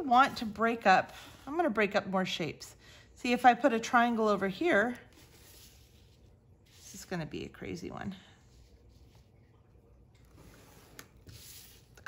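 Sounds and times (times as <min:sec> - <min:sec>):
plastic ruler sliding on paper: 0:10.3 - 0:12.0.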